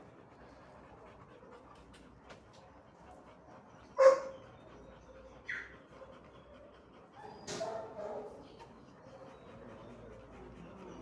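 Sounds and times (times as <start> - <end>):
dog barking: 4.0 - 4.4, 7.6 - 8.4
dog yipping: 4.0 - 4.4.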